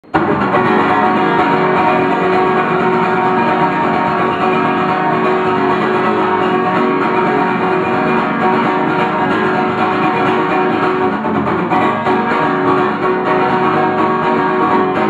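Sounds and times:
acoustic guitar strumming: 0:00.0 - 0:15.0.

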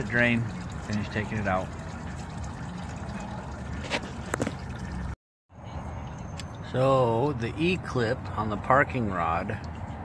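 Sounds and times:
fluid trickling and dripping into pan: 0:00.0 - 0:05.2.

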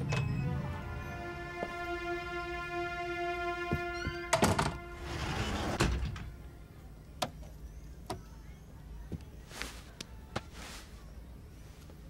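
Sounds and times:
held synthesizer chord: 0:00.0 - 0:05.4.

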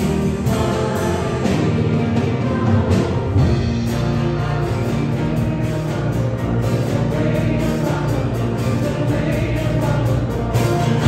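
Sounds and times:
group of voices singing: 0:00.0 - 0:11.0
worship band playing: 0:00.0 - 0:11.0.

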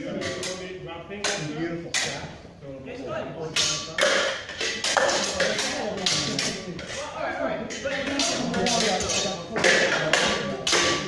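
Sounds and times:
practice swords clashing: 0:07.7 - 0:11.0.

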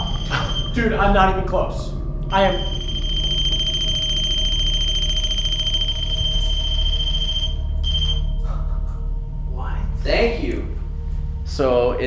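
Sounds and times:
high-pitched electronic tone: 0:00.0 - 0:01.7, 0:02.3 - 0:08.5
low hum: 0:00.0 - 0:12.0.

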